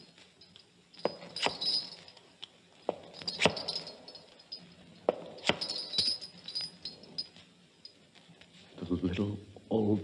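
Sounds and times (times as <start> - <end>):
faint metallic jingle: 0.0 - 8.4.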